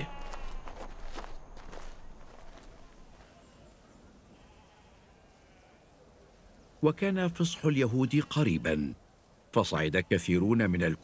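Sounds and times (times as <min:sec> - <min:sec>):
faint animal bleating: 0:00.0 - 0:00.8, 0:03.2 - 0:06.0
footsteps on dirt path: 0:00.0 - 0:03.6.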